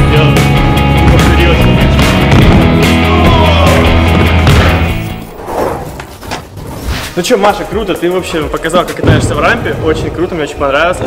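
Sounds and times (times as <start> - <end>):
music with heavy beat: 0.0 - 5.0.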